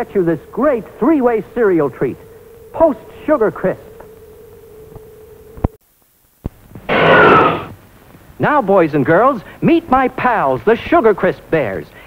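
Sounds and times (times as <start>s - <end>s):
film soundtrack hum: 0.0s - 10.0s
loud rushing noise: 6.9s - 7.7s.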